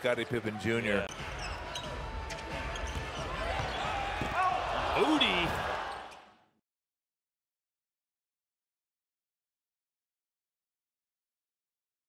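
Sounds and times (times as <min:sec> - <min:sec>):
shoe squeaks: 0:01.4 - 0:03.8.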